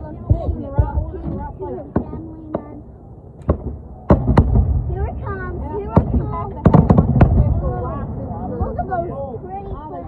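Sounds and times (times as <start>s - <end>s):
fireworks bursting: 0.2s - 8.9s.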